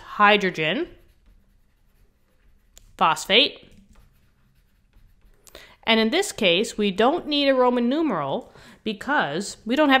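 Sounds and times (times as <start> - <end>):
person speaking: 0.0 - 1.2, 2.8 - 4.2, 5.6 - 10.0
stylus scratching handwriting: 0.0 - 7.6
person breathing: 5.4 - 5.8, 8.5 - 8.9.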